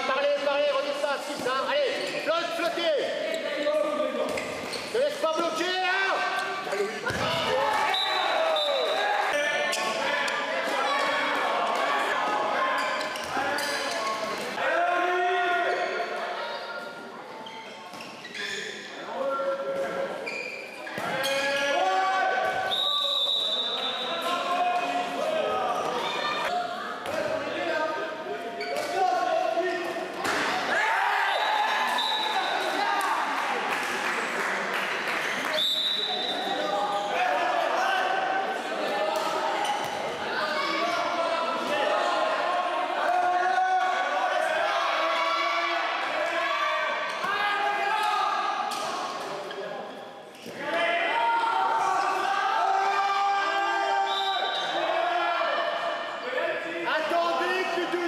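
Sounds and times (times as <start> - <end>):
people shouting in a hall: 4.9 - 17.2, 18.4 - 34.7, 35.4 - 58.0.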